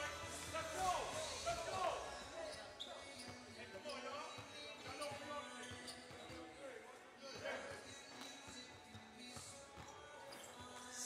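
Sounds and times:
faint music: 0:00.0 - 0:11.0
basketballs bouncing on gym floor: 0:00.2 - 0:06.6, 0:07.3 - 0:11.0.

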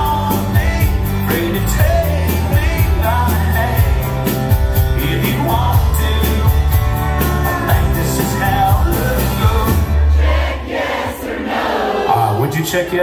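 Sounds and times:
man singing: 0:00.0 - 0:10.0
live country band: 0:00.0 - 0:11.0.

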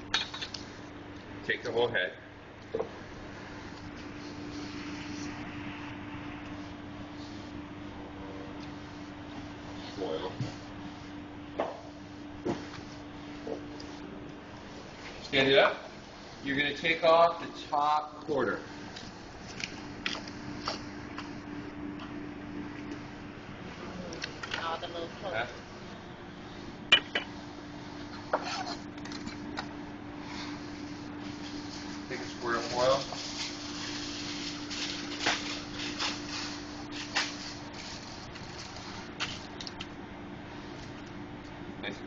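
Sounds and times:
steady hum: 0:00.0 - 0:42.0
aluminium foil crinkling: 0:31.3 - 0:39.9.

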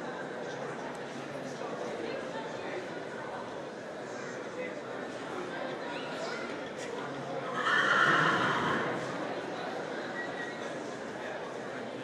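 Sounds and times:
horse whinnying: 0:07.5 - 0:08.9.

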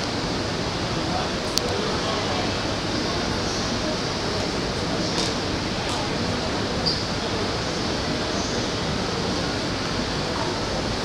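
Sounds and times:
railway platform rushing noise: 0:00.0 - 0:11.0.

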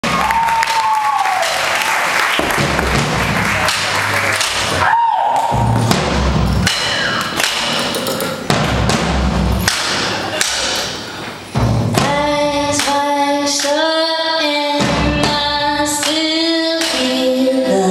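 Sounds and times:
live band music: 0:02.2 - 0:16.3
heavy thudding drum beats: 0:02.3 - 0:13.8, 0:14.7 - 0:17.2.

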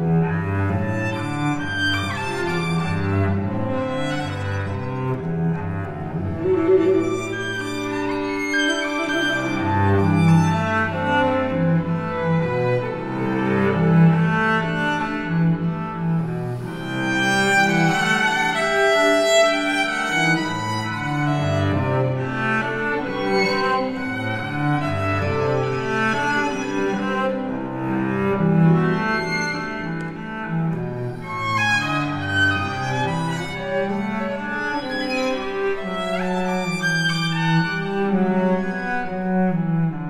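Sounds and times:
cello holding low notes: 0:00.0 - 0:40.0
violins playing bowed notes: 0:00.0 - 0:40.0.

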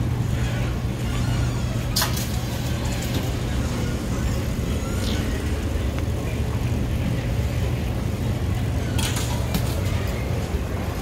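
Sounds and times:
baggage carousels humming: 0:00.0 - 0:11.0.

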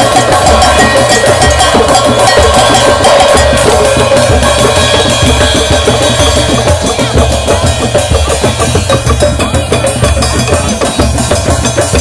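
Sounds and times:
deep bass drum beats: 0:00.0 - 0:12.0
hand drums playing fast rhythm: 0:00.0 - 0:12.0.

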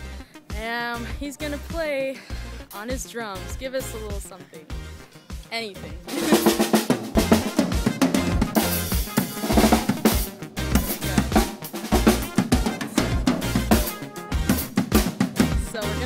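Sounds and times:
drum kit playing: 0:05.4 - 0:16.0.

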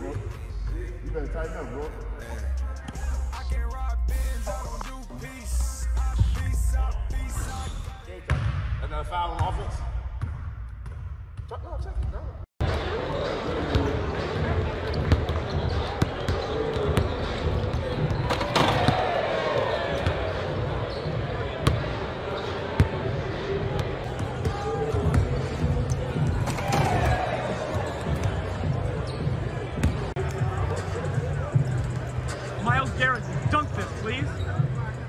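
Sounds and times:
crowd chatter: 0:12.6 - 0:35.0.

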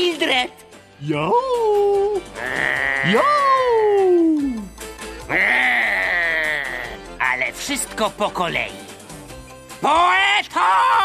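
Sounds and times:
cartoon dogs howling: 0:02.4 - 0:04.1.

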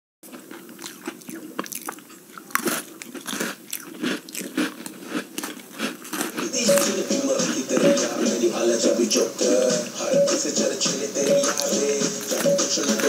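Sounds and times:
crunchy chewing and bites: 0:00.2 - 0:08.0, 0:11.2 - 0:13.0.

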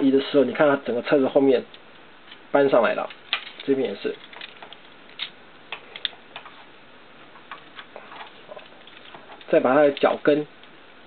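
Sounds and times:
plastic toy parts clicking: 0:03.0 - 0:06.2.

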